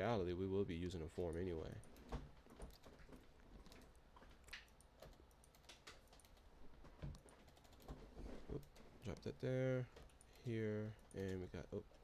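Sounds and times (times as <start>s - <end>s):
faint keyboard typing: 0.8s - 12.0s.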